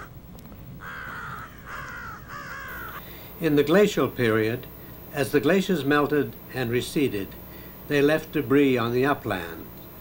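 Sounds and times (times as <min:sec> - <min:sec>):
crow cawing: 0:00.8 - 0:03.3.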